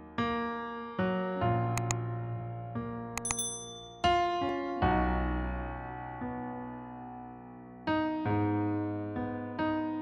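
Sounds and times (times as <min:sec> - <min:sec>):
piano chords: 0:01.6 - 0:10.0
clicks: 0:01.8 - 0:02.0, 0:03.2 - 0:04.0
high bright bell ding: 0:03.2 - 0:04.3.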